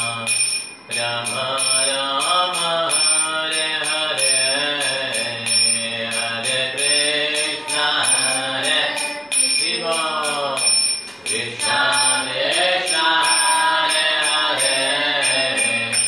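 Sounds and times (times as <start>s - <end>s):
man chanting melodically: 0.0s - 16.0s
steady high ringing drone: 0.0s - 16.0s.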